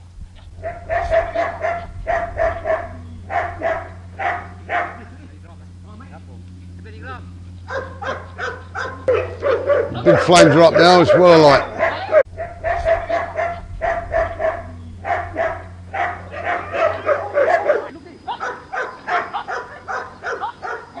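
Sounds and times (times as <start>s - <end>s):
dog yapping: 0.6s - 5.1s, 7.6s - 21.0s.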